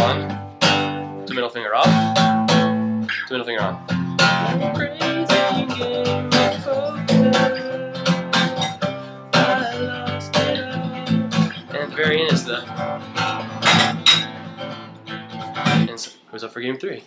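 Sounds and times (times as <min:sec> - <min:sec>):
acoustic guitar strumming: 0:00.0 - 0:16.2.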